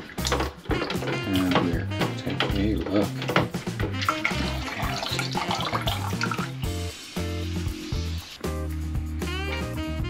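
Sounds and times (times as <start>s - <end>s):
water splashing in a sink: 0.0s - 7.8s
background music: 0.0s - 10.0s.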